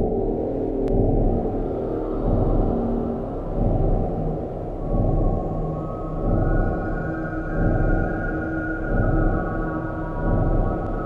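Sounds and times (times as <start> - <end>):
dark ambient drone music: 0.0 - 11.0.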